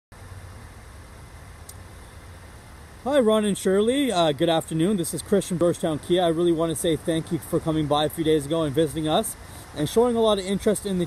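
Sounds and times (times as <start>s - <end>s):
low outdoor rumble: 0.1s - 11.0s
faint hiss: 0.2s - 11.0s.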